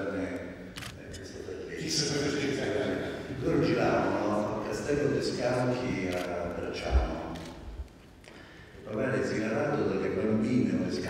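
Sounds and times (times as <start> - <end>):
man talking into a microphone: 0.0 - 7.6, 8.8 - 11.0.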